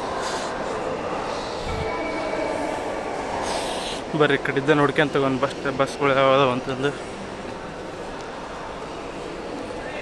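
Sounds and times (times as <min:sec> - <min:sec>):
crowd noise in large hall: 0:00.0 - 0:10.0.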